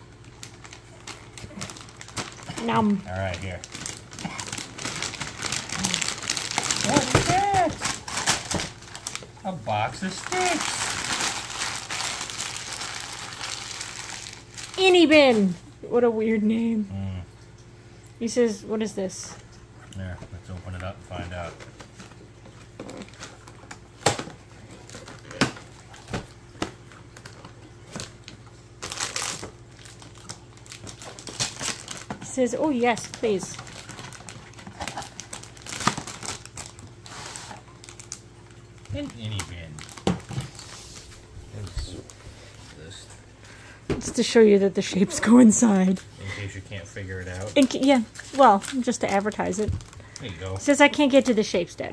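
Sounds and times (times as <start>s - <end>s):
foil gift wrap crinkling: 0.0s - 15.6s, 20.4s - 43.6s, 45.1s - 51.6s
cardboard and packaging rustling: 0.2s - 15.6s, 20.4s - 43.1s, 45.2s - 51.2s.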